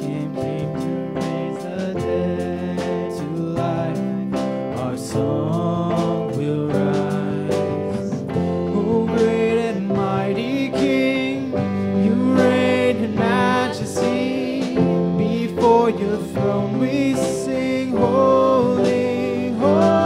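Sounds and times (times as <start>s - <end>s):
guitar: 0.0s - 20.0s
keyboard: 0.0s - 20.0s
voices singing: 0.0s - 20.0s.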